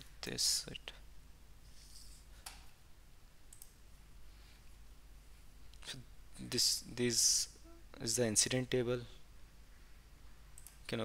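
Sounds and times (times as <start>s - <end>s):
computer mouse click: 3.5s - 3.8s, 10.6s - 10.9s.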